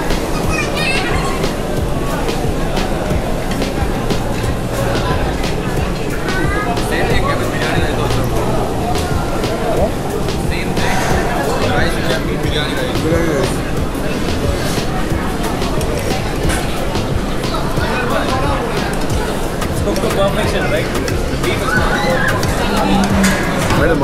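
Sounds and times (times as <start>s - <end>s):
background music: 0.0s - 24.0s
chatter of many diners: 0.0s - 24.0s.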